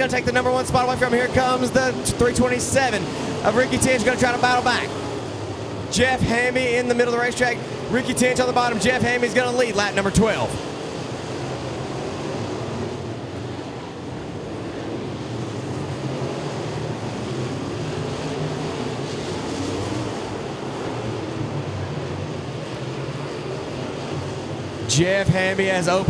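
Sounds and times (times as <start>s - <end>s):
race car engines droning: 0.0s - 26.0s.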